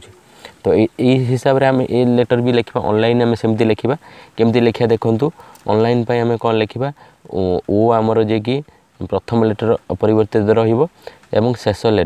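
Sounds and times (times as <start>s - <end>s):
man talking: 0.0s - 12.0s.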